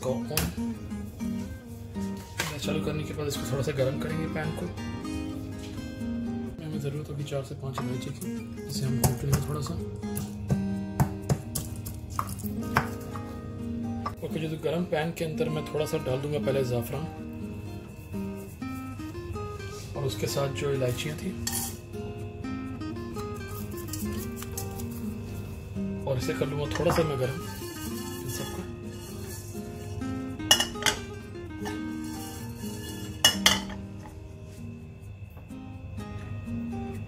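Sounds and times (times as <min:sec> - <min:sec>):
slow instrumental melody: 0:00.0 - 0:07.0, 0:07.6 - 0:14.7, 0:15.3 - 0:37.0
background music: 0:00.0 - 0:37.0
metal pan clinking: 0:21.4 - 0:21.8, 0:30.5 - 0:33.8.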